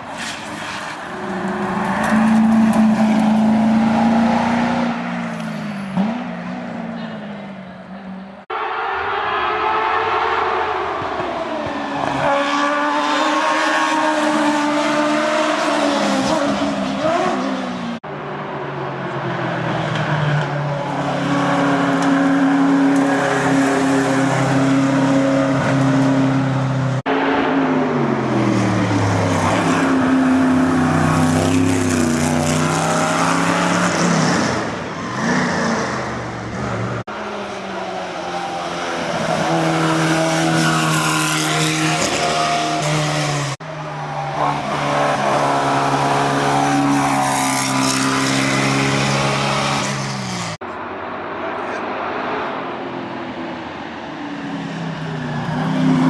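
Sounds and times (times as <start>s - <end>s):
race car engines shifting gears: 0.0s - 8.2s, 19.4s - 50.7s.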